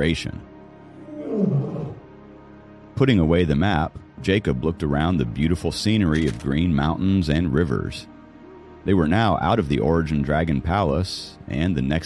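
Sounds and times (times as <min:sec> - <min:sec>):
soft background music: 0:00.0 - 0:12.0
lion roar: 0:01.0 - 0:02.0.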